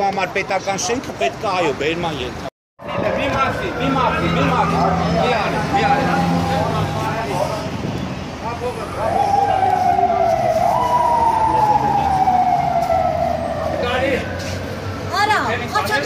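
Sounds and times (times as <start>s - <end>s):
siren wailing: 2.8s - 7.4s, 8.6s - 15.2s.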